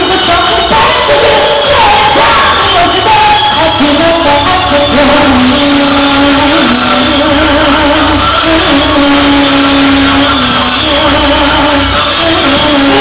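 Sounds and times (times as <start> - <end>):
live band music through speakers: 0.0 - 13.0.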